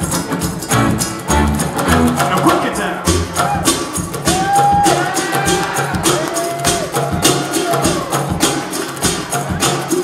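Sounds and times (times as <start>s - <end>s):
steady percussion beat: 0.0s - 10.0s.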